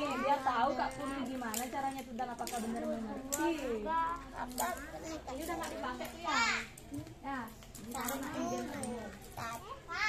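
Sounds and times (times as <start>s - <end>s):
children talking and chattering: 0.0s - 10.0s.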